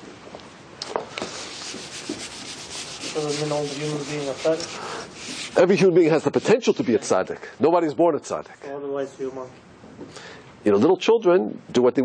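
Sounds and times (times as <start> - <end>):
scratchy rubbing noise: 1.3 - 7.2.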